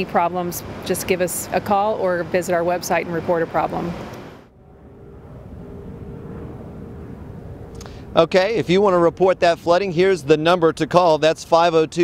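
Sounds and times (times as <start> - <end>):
passing cars rumbling: 0.0 - 12.0.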